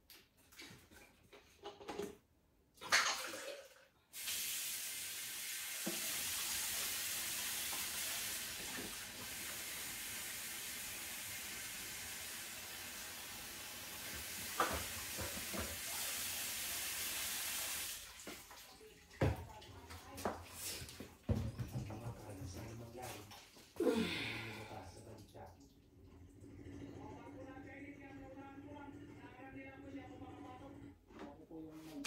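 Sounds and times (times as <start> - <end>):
tap water running into sink: 2.8 - 23.8.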